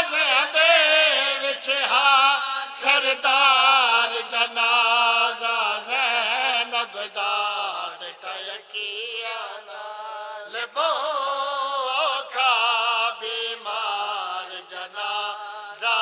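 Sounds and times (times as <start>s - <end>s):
men chanting in unison: 0.0s - 16.0s.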